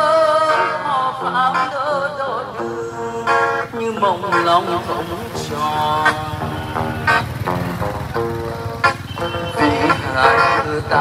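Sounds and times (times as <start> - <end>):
electric guitar melody over loudspeaker: 0.0 - 11.0
motorbike passing: 0.0 - 11.0.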